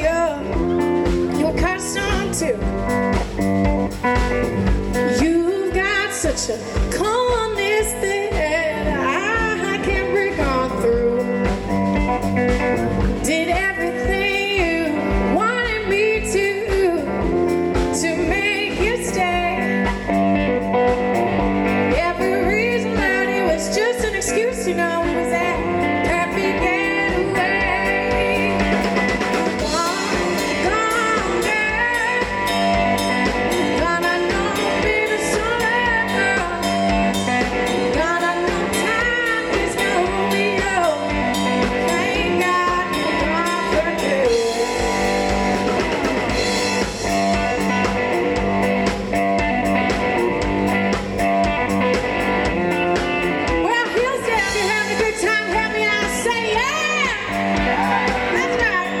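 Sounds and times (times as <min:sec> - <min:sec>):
woman singing: 0:00.0 - 0:03.3, 0:04.9 - 0:11.8, 0:13.1 - 0:20.5, 0:21.3 - 0:47.5, 0:53.4 - 0:59.0
drum kit: 0:00.0 - 0:59.0
electric guitar: 0:00.0 - 0:59.0.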